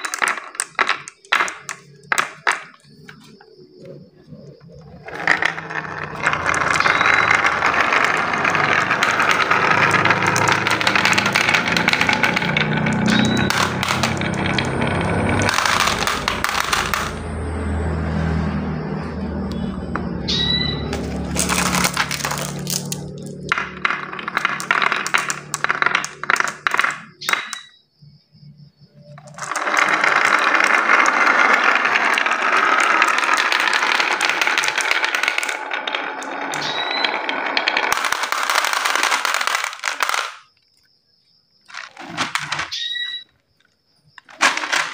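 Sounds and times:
marbles rattling down wooden slope: 0.0 - 3.4, 4.4 - 18.0, 19.7 - 27.8, 29.0 - 40.6, 41.7 - 43.2, 44.2 - 44.9.

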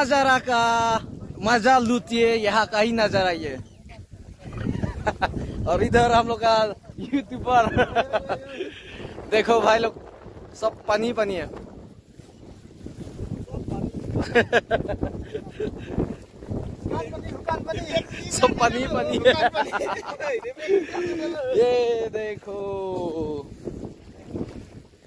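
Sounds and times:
wind buffeting microphone: 0.0 - 25.0
person speaking: 16.8 - 23.5.

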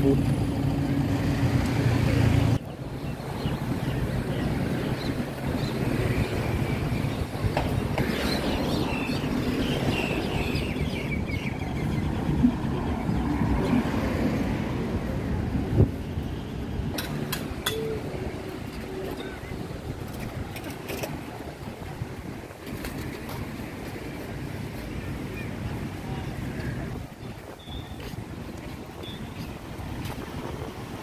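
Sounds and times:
distant traffic: 0.0 - 31.0.

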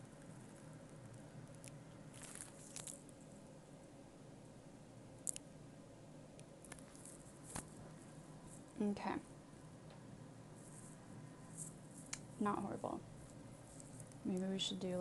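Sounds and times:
faint handling clicks and rustles: 6.6 - 8.8, 13.2 - 15.0.

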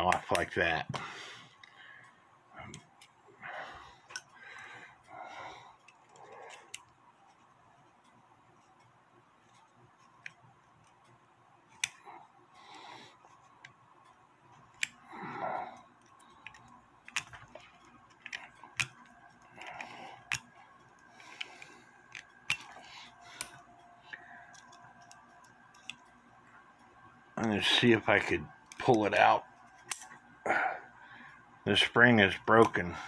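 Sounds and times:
small metallic clicks and taps: 16.0 - 26.2.

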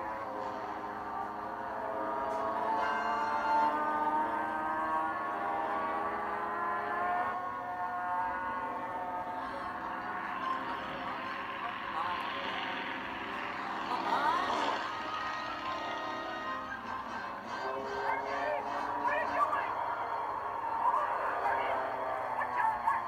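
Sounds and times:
music from small speaker: 14.7 - 19.2.

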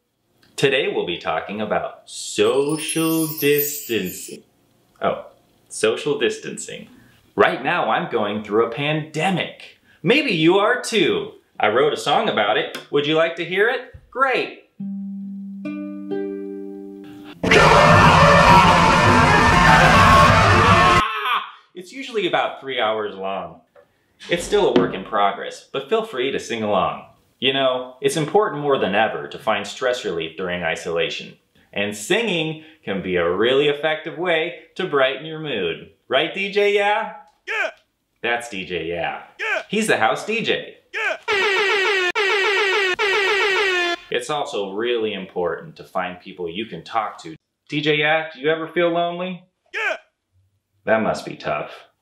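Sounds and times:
man screaming: 17.4 - 21.7, 37.5 - 37.8, 39.4 - 39.7, 41.0 - 44.0, 49.8 - 50.0
air horn blasts: 41.3 - 44.1.

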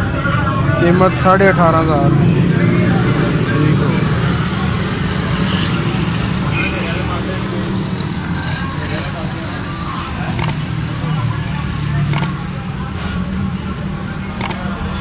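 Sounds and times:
sharp click: 10.4 - 10.6, 12.1 - 12.4, 14.4 - 14.7.

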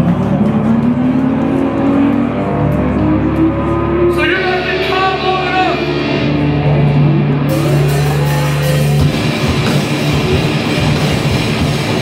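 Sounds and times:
distorted electric guitars: 0.0 - 12.0
drums and cymbals: 7.5 - 12.0.

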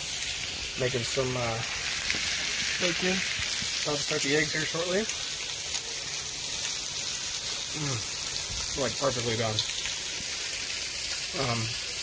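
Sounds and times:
bacon sizzling in a frying pan: 0.0 - 12.0.

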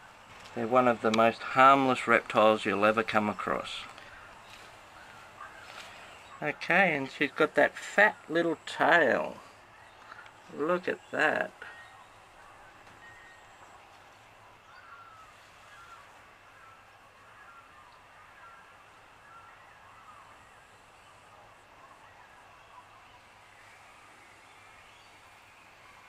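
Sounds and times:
distant birds chirping: 0.0 - 26.0
low steady hiss: 0.0 - 26.0.

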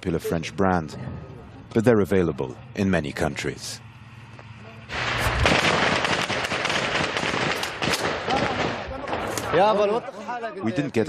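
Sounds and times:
automatic gunfire: 4.9 - 9.3.

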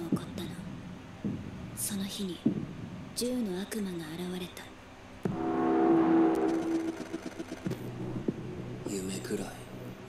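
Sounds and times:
steady multi-tone drone: 5.3 - 8.1.

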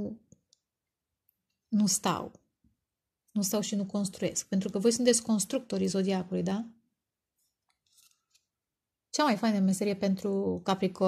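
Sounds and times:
cards clicking and scraping: 7.6 - 8.5.

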